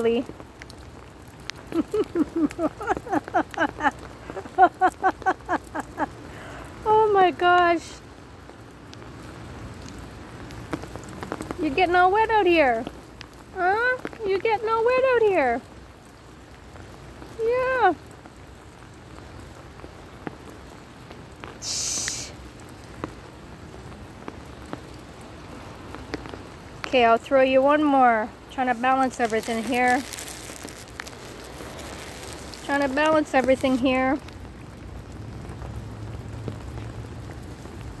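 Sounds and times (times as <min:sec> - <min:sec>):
raindrop ticks: 0:00.0 - 0:38.0
steady rain falling: 0:00.0 - 0:38.0
brief hiss: 0:21.6 - 0:22.4.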